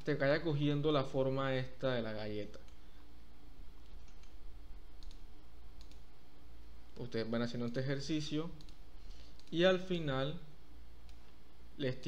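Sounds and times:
steady low hum: 0:00.0 - 0:12.0
mouse and keyboard clicks: 0:03.8 - 0:04.4, 0:05.0 - 0:05.2, 0:05.8 - 0:06.0, 0:08.6 - 0:09.6.

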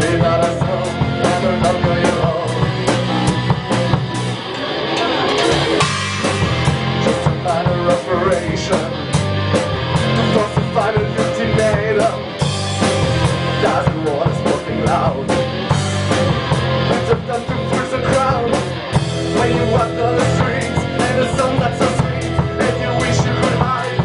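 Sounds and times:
bass guitar: 0:00.0 - 0:24.0
drum kit playing a steady beat: 0:00.0 - 0:24.0
electric guitar: 0:00.0 - 0:24.0.

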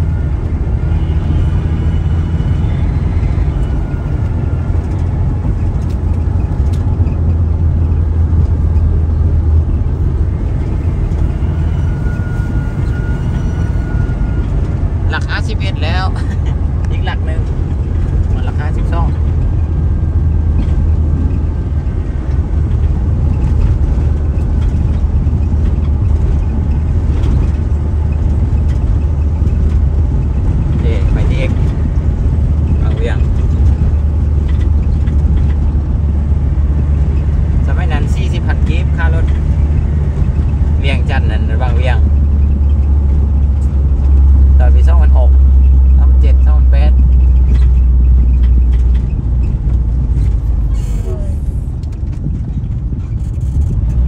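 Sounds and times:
engine and tyre rumble in cabin: 0:00.0 - 0:54.0.

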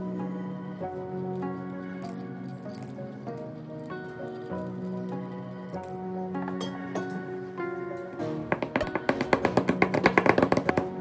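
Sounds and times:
gentle instrumental music: 0:00.0 - 0:11.0
rock sugar clicking into mortar: 0:08.6 - 0:11.0.

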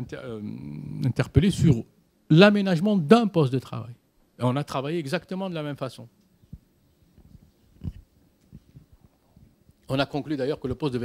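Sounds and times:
faint rumbling room noise: 0:00.0 - 0:11.0.

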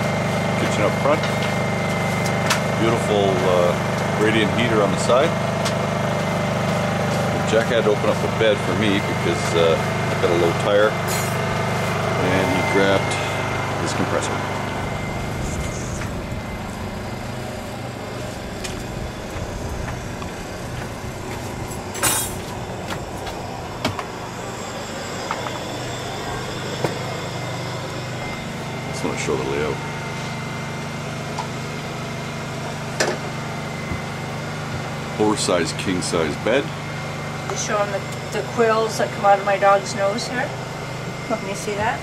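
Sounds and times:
motor humming: 0:00.0 - 0:42.0.

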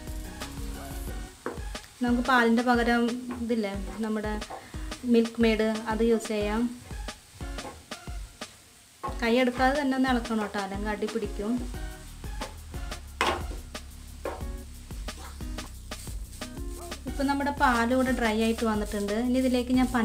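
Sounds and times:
background music with voice: 0:00.0 - 0:08.2, 0:09.1 - 0:20.0
light sizzle: 0:00.0 - 0:20.0
spatula scraping frying pan: 0:03.1 - 0:04.7, 0:14.3 - 0:20.0.

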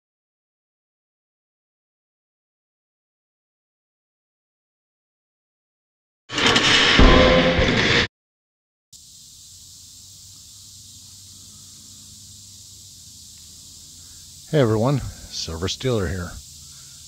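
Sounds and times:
loud sudden burst with hit: 0:06.3 - 0:08.1
outdoor background hiss: 0:09.0 - 0:17.0.

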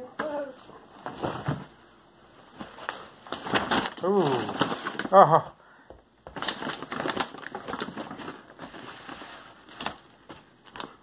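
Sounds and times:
paper bag rustling: 0:02.5 - 0:05.2, 0:06.3 - 0:11.0.

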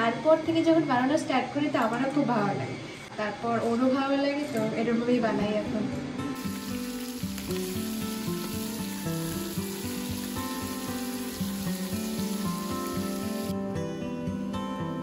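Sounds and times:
plucked guitar music: 0:06.3 - 0:15.0
vegetables sizzling in oil: 0:06.4 - 0:13.6.

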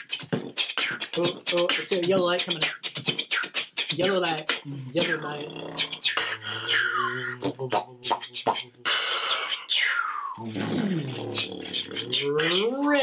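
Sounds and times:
beatboxing mouth clicks: 0:00.0 - 0:13.0
falling vocal swoops: 0:03.8 - 0:13.0.

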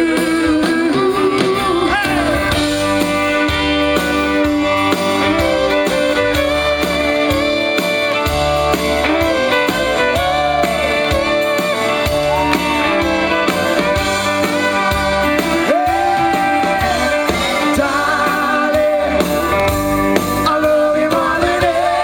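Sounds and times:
bass guitar: 0:00.0 - 0:22.0
drum kit beat: 0:00.0 - 0:22.0
electric guitar: 0:00.0 - 0:22.0.

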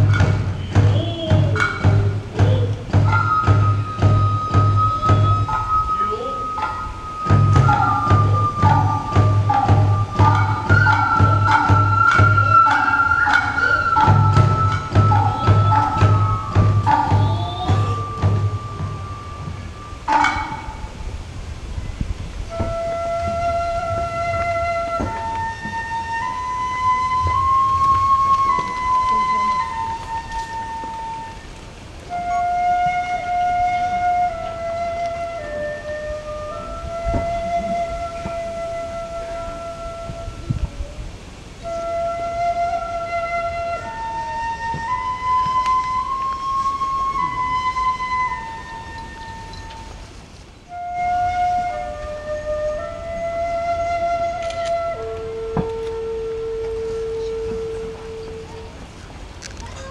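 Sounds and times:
bamboo flute melody: 0:00.0 - 0:59.9.

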